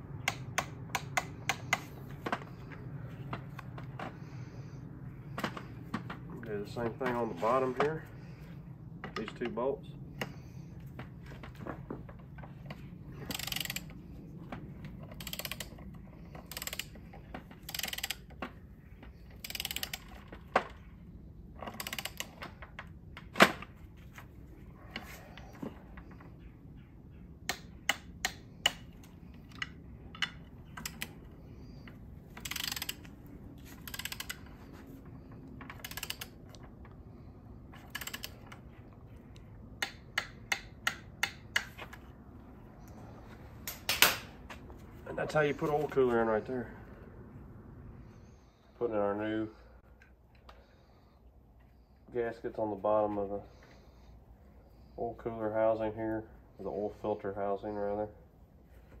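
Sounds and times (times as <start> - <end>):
torque wrench ratcheting: 13.2 - 14.0, 15.0 - 18.3, 19.4 - 20.3, 21.6 - 22.4, 32.4 - 33.1, 33.8 - 34.6, 35.7 - 36.4, 37.8 - 38.5.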